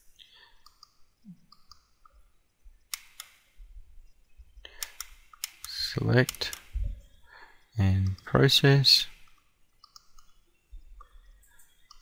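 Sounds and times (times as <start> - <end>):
computer mouse clicks: 0.6 - 2.2, 2.9 - 3.4, 4.7 - 6.7, 9.2 - 10.4, 11.0 - 12.0.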